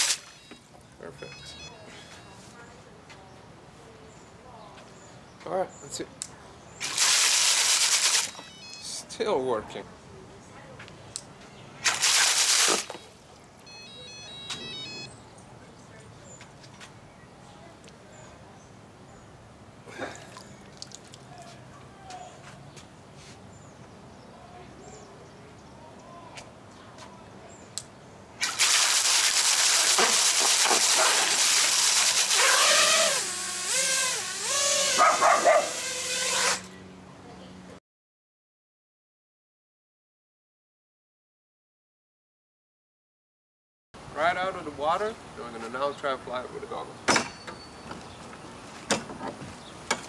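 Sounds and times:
electronic beeps: 0.2 - 2.5, 8.3 - 9.1, 12.9 - 15.2
propellers churning water: 6.8 - 8.3, 11.8 - 13.2, 28.4 - 33.4
motor whine: 31.0 - 36.8.

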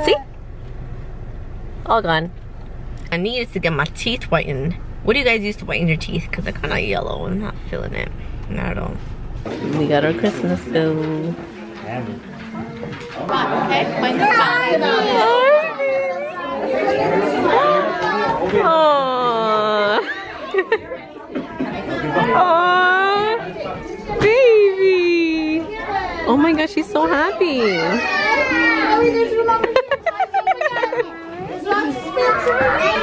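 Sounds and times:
young children chattering: 9.5 - 33.0.

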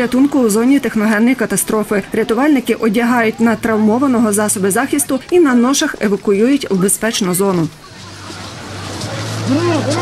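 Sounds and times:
noisy background: 0.0 - 10.0.

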